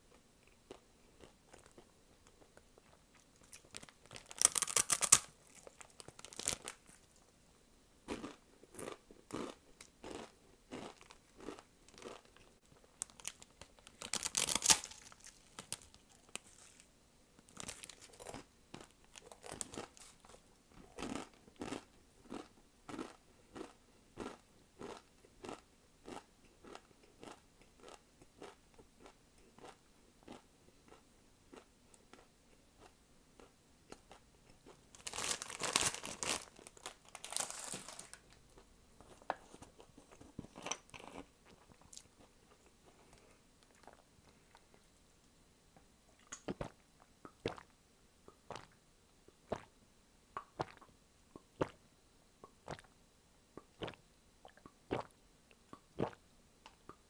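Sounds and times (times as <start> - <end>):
crunchy chewing: 8.1 - 16.9, 17.5 - 38.4.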